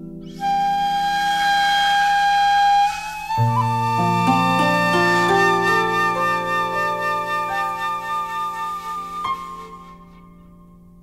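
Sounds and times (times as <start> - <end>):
bamboo flute long note: 0.0 - 10.8.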